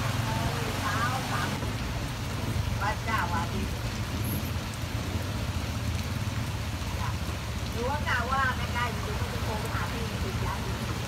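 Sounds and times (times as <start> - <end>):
rain falling on water: 0.0 - 11.0.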